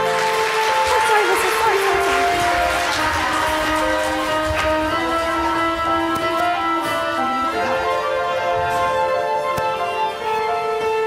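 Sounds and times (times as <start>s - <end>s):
orchestra playing held chords: 0.0s - 11.0s.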